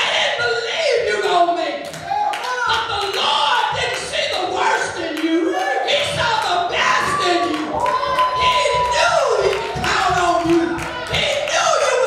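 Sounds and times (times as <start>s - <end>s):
congregation hand-clapping: 1.2s - 12.0s
woman preaching through amplifier: 2.6s - 12.0s.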